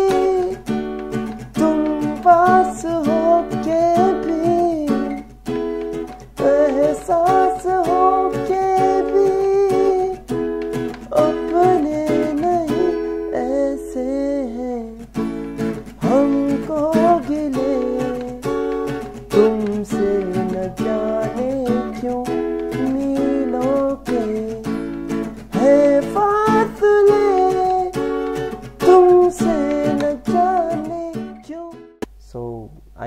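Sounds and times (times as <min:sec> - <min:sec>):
man singing: 0:00.0 - 0:00.7, 0:01.5 - 0:05.2, 0:06.4 - 0:10.3, 0:11.0 - 0:15.1, 0:16.0 - 0:24.8, 0:25.5 - 0:32.7
acoustic guitar strumming: 0:00.0 - 0:32.1.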